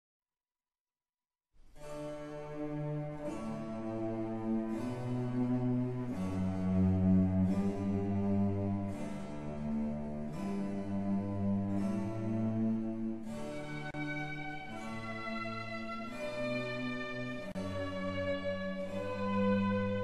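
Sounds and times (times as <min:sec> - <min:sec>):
slow instrumental music with low chords: 0:02.0 - 0:20.0.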